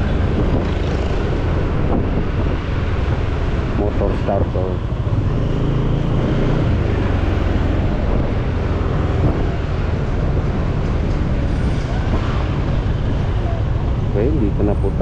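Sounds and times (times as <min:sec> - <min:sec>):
road and wind noise: 0:00.0 - 0:15.0
street traffic hum: 0:00.0 - 0:15.0.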